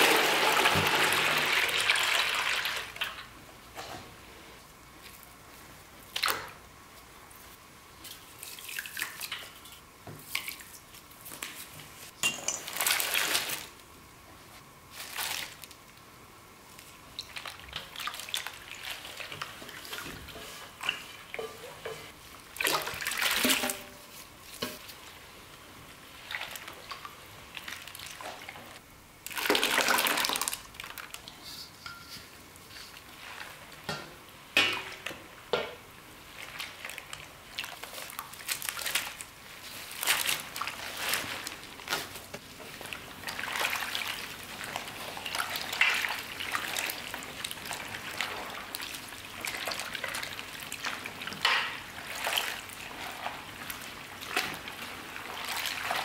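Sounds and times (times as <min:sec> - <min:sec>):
liquid sloshing in metal basin: 0:17.2 - 0:24.9, 0:39.8 - 0:56.0.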